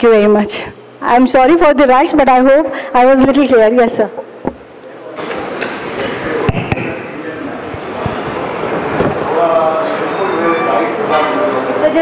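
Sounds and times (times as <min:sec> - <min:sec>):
chatter of voices in a hall: 0:00.0 - 0:12.0.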